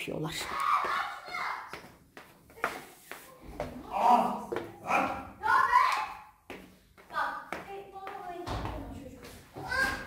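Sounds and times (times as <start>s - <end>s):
footsteps on wooden stairs: 6.4s - 10.0s.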